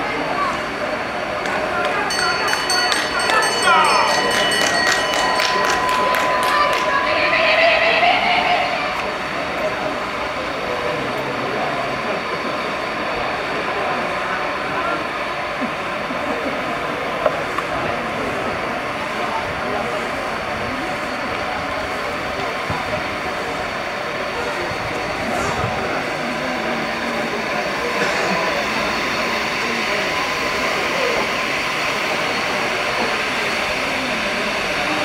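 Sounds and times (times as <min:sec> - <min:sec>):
rapid hand clapping: 0:04.2 - 0:06.9.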